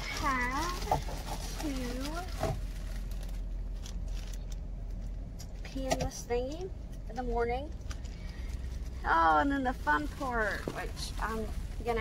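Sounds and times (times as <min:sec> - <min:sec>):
plastic bag crinkling: 0:00.0 - 0:05.3
low hum in car cabin: 0:00.0 - 0:12.0.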